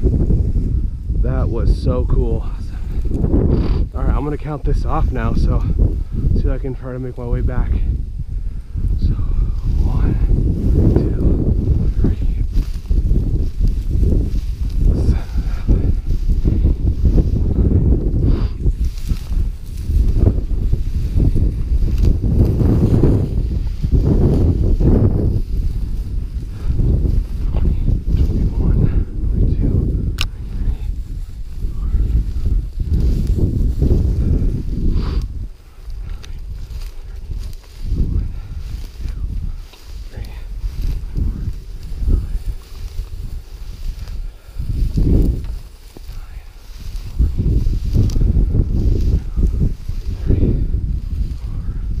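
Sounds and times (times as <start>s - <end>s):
footsteps through grass and snow: 0.0s - 52.0s
wind rumble on microphone: 0.0s - 52.0s
grass swishing against legs: 8.8s - 52.0s.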